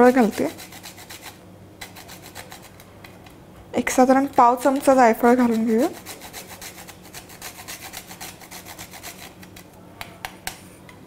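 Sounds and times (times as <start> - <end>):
nutmeg scraping on metal grater: 0.0 - 2.8, 4.2 - 9.7.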